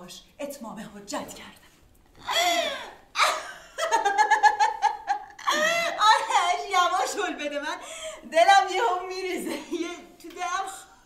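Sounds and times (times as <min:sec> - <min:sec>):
woman laughing heartily: 0:02.3 - 0:06.3.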